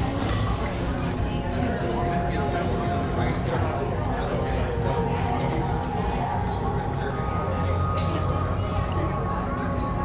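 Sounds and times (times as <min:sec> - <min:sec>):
faint music: 0:00.0 - 0:10.0
murmuring voices: 0:00.0 - 0:10.0.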